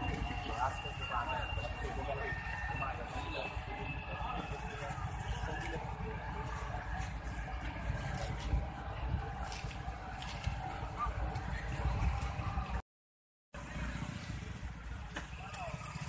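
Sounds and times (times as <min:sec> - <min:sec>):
indistinct voices talking: 0:00.0 - 0:12.8.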